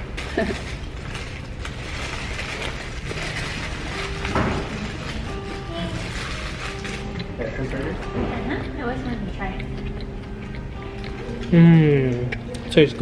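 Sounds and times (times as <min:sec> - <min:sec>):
crunching and chewing: 0:00.0 - 0:13.0
faint music with held notes: 0:00.0 - 0:13.0
restaurant noise: 0:00.0 - 0:13.0.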